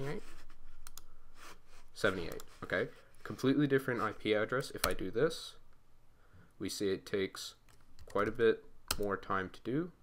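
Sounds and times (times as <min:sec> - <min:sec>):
person speaking: 0:00.0 - 0:05.8, 0:06.5 - 0:10.0
computer keys clicking: 0:00.8 - 0:01.1.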